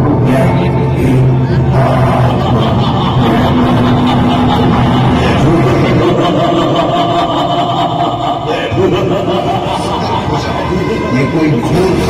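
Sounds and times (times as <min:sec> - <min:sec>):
dramatic music over sound system: 0:00.0 - 0:12.0.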